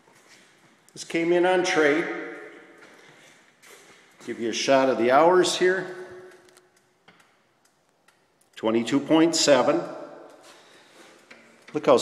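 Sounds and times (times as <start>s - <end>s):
man's voice: 1.0s - 2.2s, 4.3s - 6.1s.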